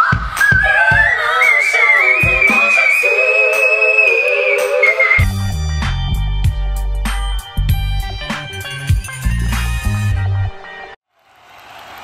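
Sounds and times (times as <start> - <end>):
woman singing high whistle note: 0.0 - 5.3
backing music: 0.0 - 11.0.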